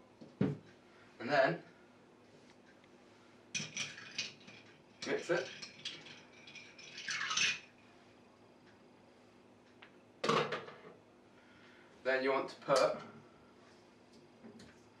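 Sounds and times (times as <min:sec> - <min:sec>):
spoon stirring ice in glass: 0:03.6 - 0:07.7.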